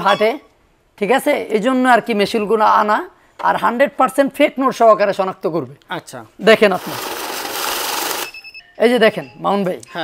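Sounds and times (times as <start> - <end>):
banknote counting machine whirring: 6.6 - 8.4.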